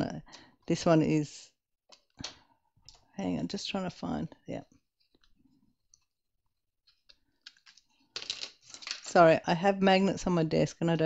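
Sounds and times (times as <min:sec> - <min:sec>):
small hard objects clicking on desk: 0:07.0 - 0:09.2.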